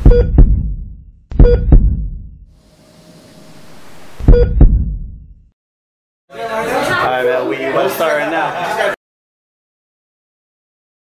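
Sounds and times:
heartbeat thumps: 0:00.0 - 0:02.5, 0:04.2 - 0:05.4
low boom: 0:00.0 - 0:02.5, 0:04.2 - 0:05.4.

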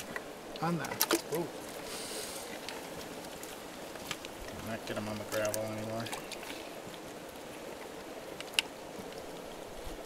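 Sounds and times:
water sloshing in a plastic bucket: 0:00.0 - 0:10.0.

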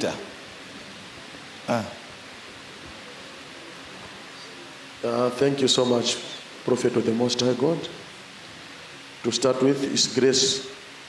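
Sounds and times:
steady background hiss: 0:00.0 - 0:11.0
man saying ah: 0:01.7 - 0:02.0.

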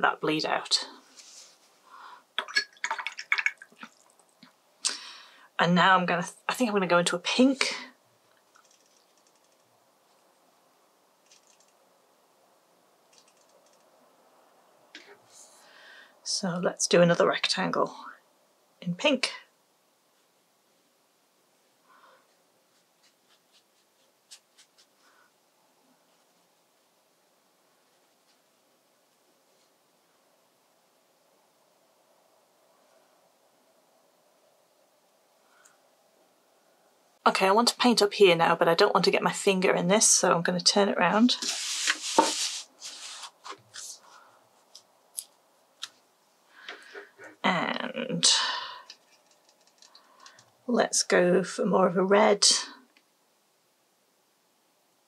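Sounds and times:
small water splashes: 0:02.4 - 0:04.2.

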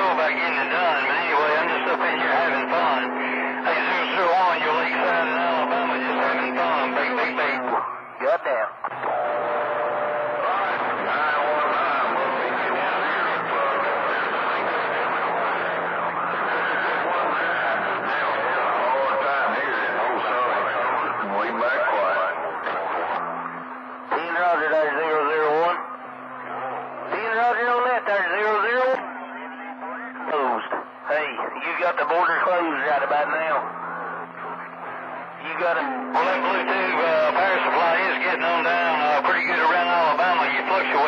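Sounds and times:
steady low tone: 0:00.0 - 0:08.2, 0:08.8 - 0:41.0
wavering voice over radio: 0:00.0 - 0:23.3, 0:24.1 - 0:41.0
garbled radio transmissions: 0:00.0 - 0:41.0.

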